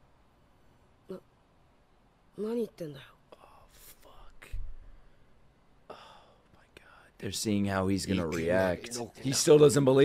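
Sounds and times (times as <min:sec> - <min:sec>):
man whispering: 0:03.0 - 0:04.6, 0:05.9 - 0:07.4.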